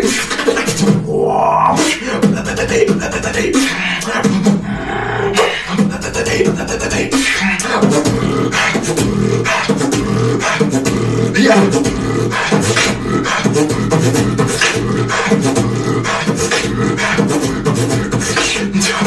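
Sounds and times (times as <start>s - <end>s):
beatboxing: 0.0s - 19.0s
hummed low tones: 8.0s - 16.1s.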